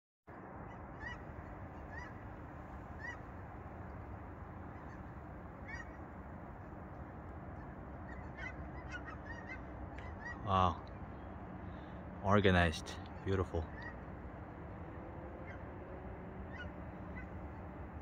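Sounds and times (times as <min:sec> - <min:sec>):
steady background noise: 0:00.3 - 0:18.0
geese honking overhead: 0:00.4 - 0:18.0.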